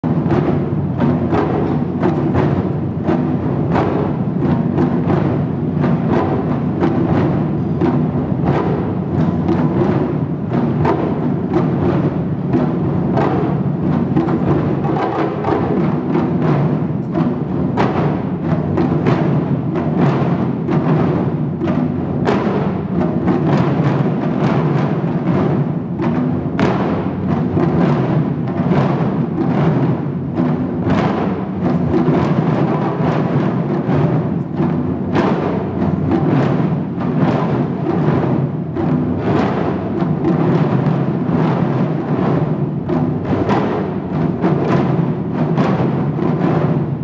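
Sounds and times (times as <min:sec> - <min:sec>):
taiko drums playing rhythm: 0:00.0 - 0:47.0.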